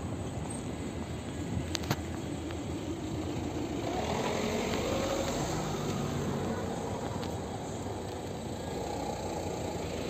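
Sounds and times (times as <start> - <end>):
street traffic rumble: 0.0 - 10.0
vehicle engine hum: 0.0 - 10.0.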